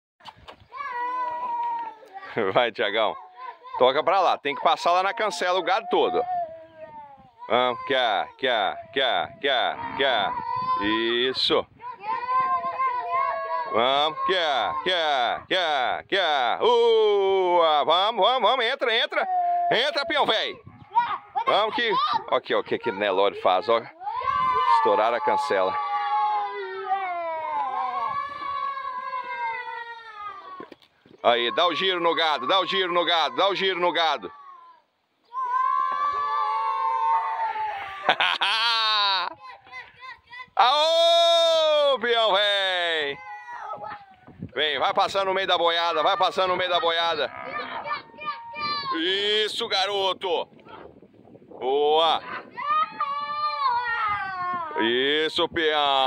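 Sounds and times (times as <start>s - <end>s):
cow lowing: 47.2s - 47.8s.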